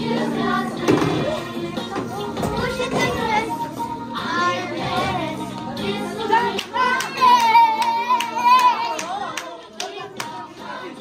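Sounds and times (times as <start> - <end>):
children singing and calling out: 0.0 - 11.0
keyboard backing music: 0.0 - 11.0.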